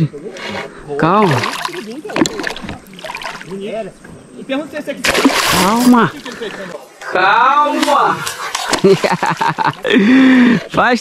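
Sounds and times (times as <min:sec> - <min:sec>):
fish splashing in water: 0:01.3 - 0:03.5, 0:05.0 - 0:06.6.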